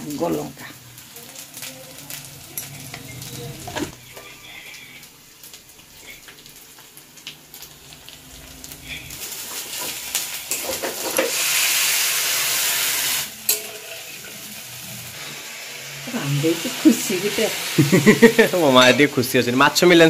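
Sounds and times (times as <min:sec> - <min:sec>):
water poured into hot pan: 0:00.0 - 0:19.8
spices frying in a pan: 0:00.0 - 0:20.0.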